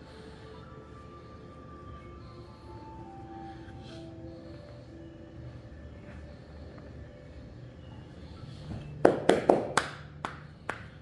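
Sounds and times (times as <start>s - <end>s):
hands clapping: 9.1s - 11.0s.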